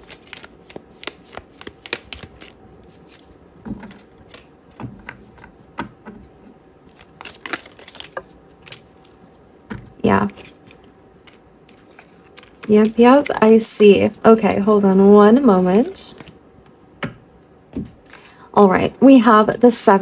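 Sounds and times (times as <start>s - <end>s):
cards being shuffled: 0.0s - 5.5s, 6.9s - 9.4s, 10.1s - 13.6s, 15.9s - 16.8s.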